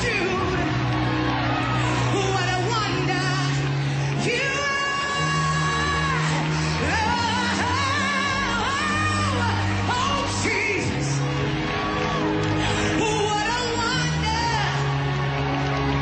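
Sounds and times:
steady bass line: 0.0 - 16.0
woman singing gospel lead: 2.1 - 11.2.

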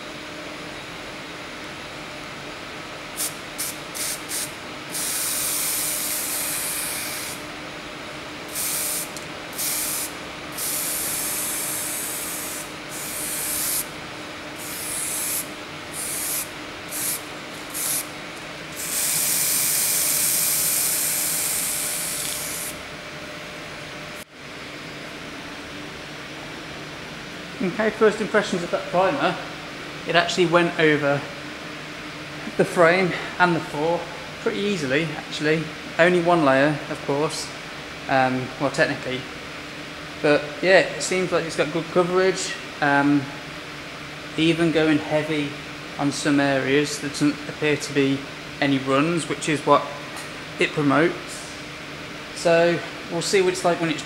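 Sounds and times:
extraction fan running: 0.0 - 54.0
aerosol can spraying: 8.5 - 13.9, 14.6 - 18.1, 18.8 - 22.8.

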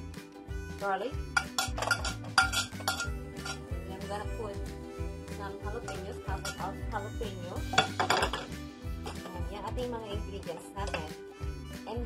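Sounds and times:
background music: 0.0 - 12.0
metal spoon clinking on plate: 1.4 - 3.7, 5.8 - 6.8.

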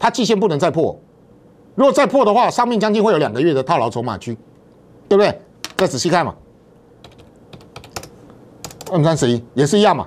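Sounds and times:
computer keyboard key clicks: 7.0 - 8.9.

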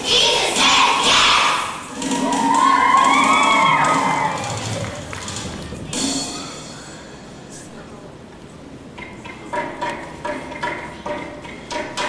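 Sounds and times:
children cheering: 2.0 - 5.3.

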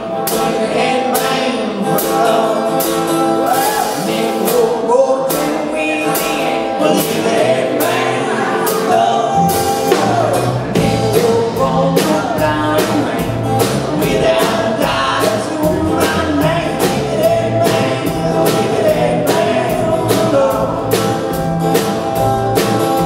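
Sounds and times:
man singing: 0.0 - 21.4
acoustic guitar: 0.0 - 23.0
drum kit beat: 0.0 - 23.0
upright bass: 0.0 - 23.0.

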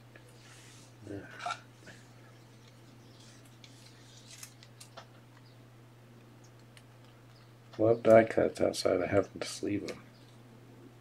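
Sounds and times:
steady low hum: 0.0 - 11.0
trading cards rustling and clicking: 2.6 - 5.1.

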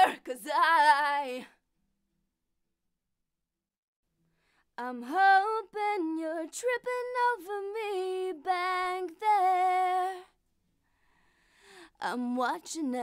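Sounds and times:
woman singing unaccompanied: 0.0 - 1.5, 4.8 - 10.3, 12.0 - 13.0.

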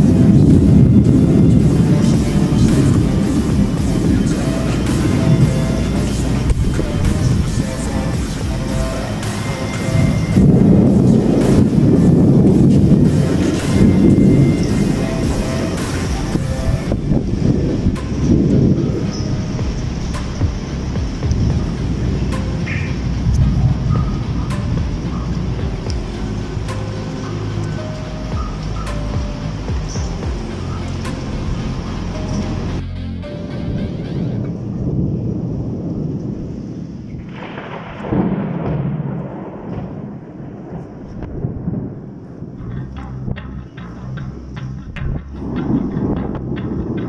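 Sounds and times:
music playing: 0.0 - 36.2, 40.6 - 47.0
thunder rumbling: 0.0 - 47.0.

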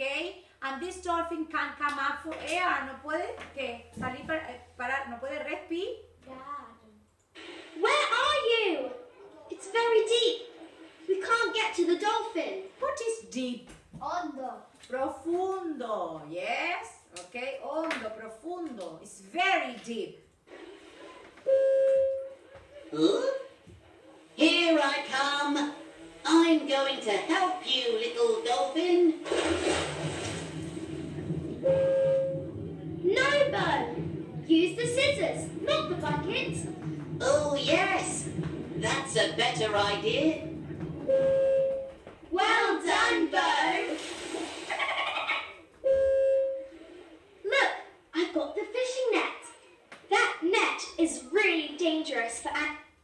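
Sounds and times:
steady even tone: 28.2 - 42.5.

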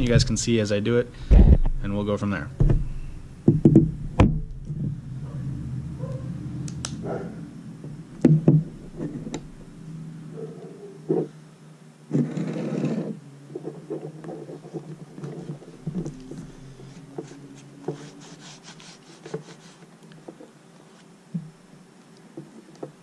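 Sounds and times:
faint steady hum: 0.0 - 23.0
brief rustling rub: 13.6 - 21.1.

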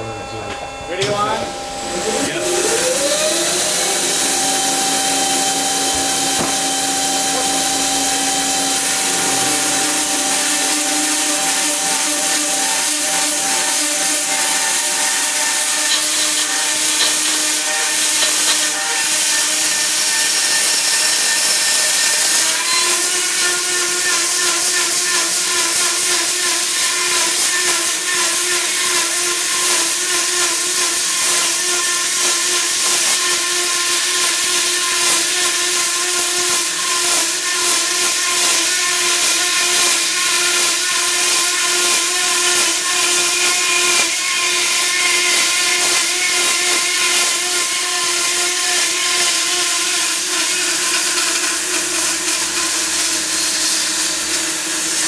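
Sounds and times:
band saw blade whining: 0.0 - 55.0
saw teeth hissing in cut: 2.0 - 55.0.

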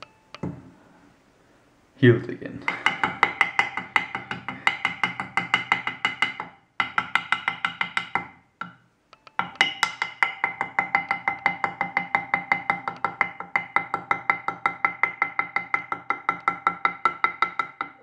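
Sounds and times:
glass thermometer tapping on wood: 2.7 - 18.0.

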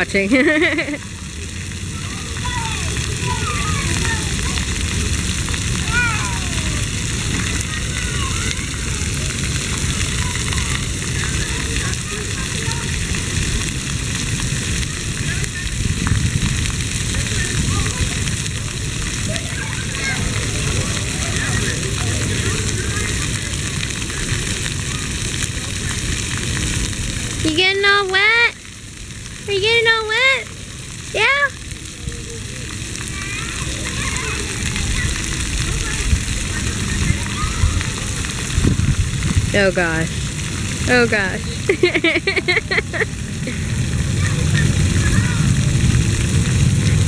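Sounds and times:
fountain jets spraying on pavement: 0.0 - 47.0
faint children's voices: 1.0 - 28.7, 29.5 - 39.5, 40.2 - 47.0.

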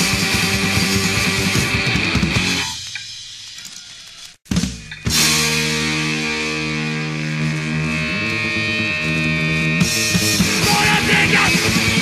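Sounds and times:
punk rock music: 0.0 - 3.2, 4.4 - 12.0
distorted electric guitar chord: 5.1 - 12.0.

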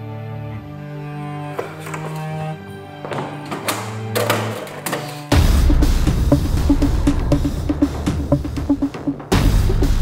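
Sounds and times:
sustained low notes: 5.4 - 10.0.

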